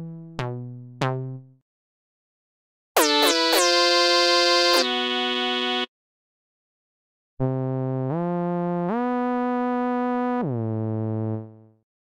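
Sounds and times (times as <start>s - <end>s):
synthesizer note sliding down: 3.0s - 5.9s.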